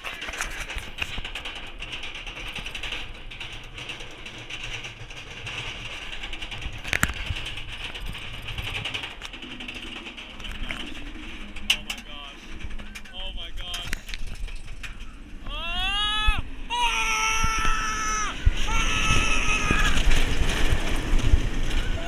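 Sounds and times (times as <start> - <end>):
roller coaster chain clattering: 0.0 - 22.0.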